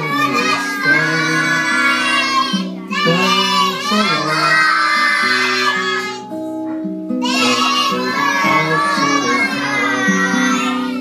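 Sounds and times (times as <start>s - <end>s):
children singing: 0.0s - 6.3s, 7.2s - 11.0s.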